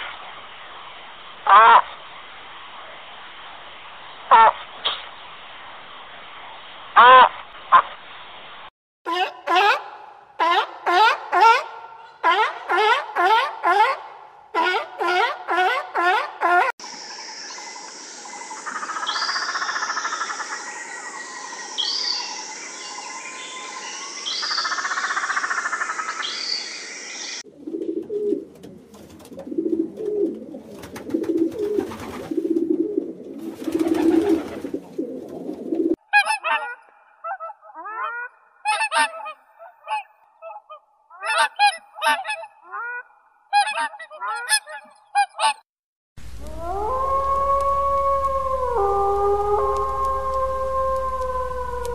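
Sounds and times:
pigeon cooing: 27.5s - 36.0s
swans honking: 36.1s - 36.9s.

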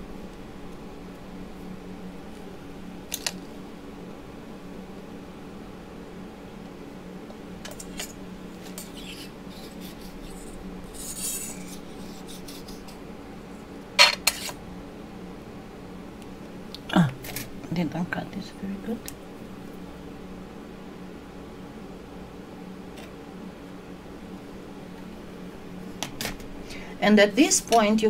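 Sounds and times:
steady low hum: 0.0s - 28.0s
blade scraping through clay: 8.6s - 13.0s, 14.0s - 14.6s.

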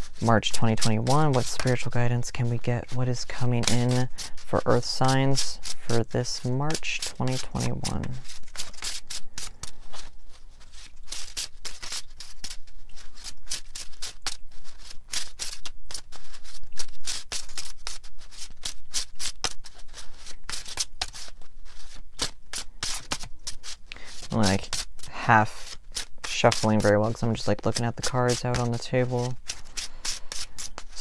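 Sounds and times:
cards being shuffled: 0.0s - 31.0s.

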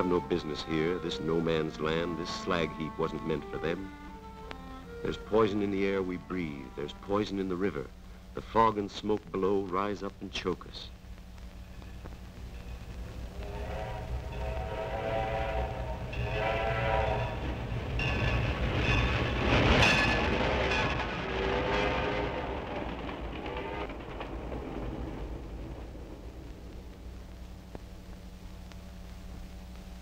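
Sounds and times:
rush of passing train: 0.0s - 7.9s, 12.6s - 27.2s
steam train whistle blasts: 13.4s - 17.6s.

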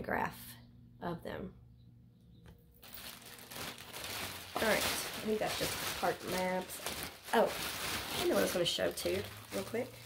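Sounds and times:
plastic bag crinkling: 2.8s - 10.0s.

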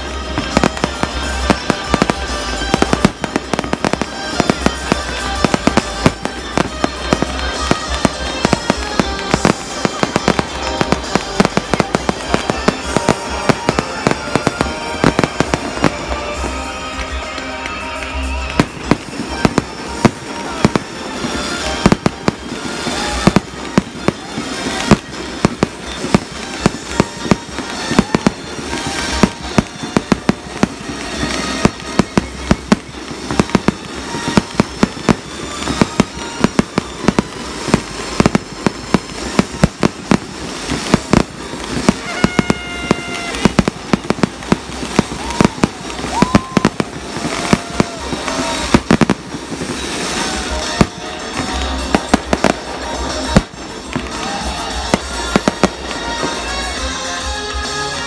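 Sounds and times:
fireworks bursting: 0.0s - 58.0s.

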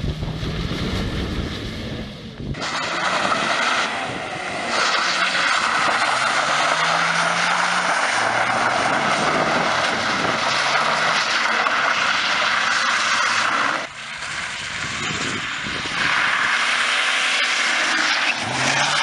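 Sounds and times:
diesel engine revving: 0.0s - 19.0s
tyres hissing on asphalt: 2.5s - 19.0s.

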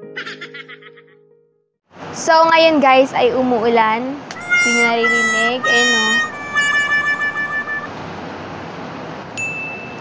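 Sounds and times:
high held tone: 4.3s - 7.9s.

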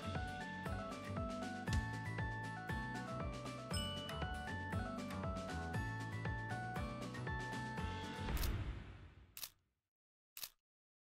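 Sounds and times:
music: 0.0s - 9.2s.

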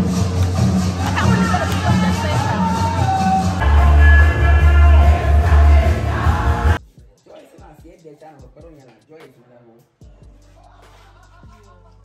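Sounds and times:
heavy bass: 0.0s - 6.8s
amplified church music with singing: 0.0s - 7.5s, 9.9s - 12.0s.

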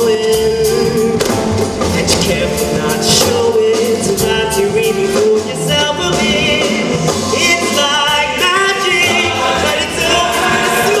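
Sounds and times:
instrumental accompaniment with bass beat: 0.0s - 11.0s
male choir singing in parts: 7.6s - 11.0s.

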